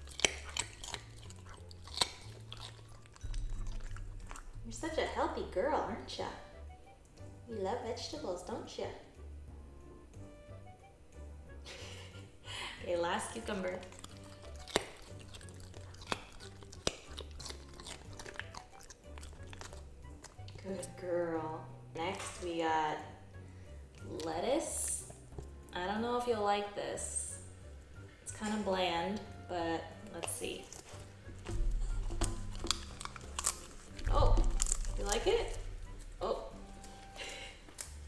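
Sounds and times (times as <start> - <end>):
puppy crunching cucumber: 0.0 - 6.5, 13.0 - 22.7, 23.9 - 26.0, 28.4 - 38.0
soft background music: 0.0 - 38.0.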